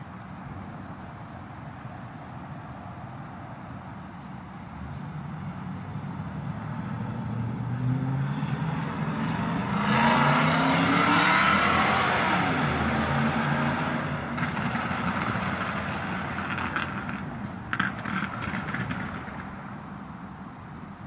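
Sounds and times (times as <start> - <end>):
vehicle passing by: 5.4 - 19.6.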